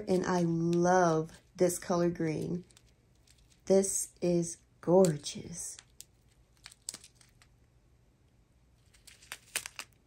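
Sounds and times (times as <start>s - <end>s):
plastic bags crinkling: 2.3s - 3.7s, 5.8s - 7.5s, 8.8s - 10.0s.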